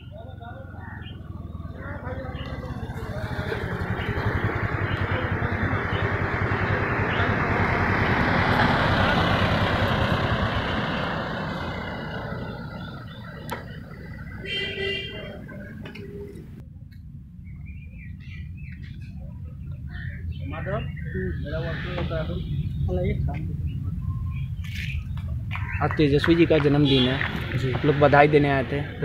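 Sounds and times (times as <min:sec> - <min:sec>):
pickup truck driving past: 0:01.1 - 0:15.8.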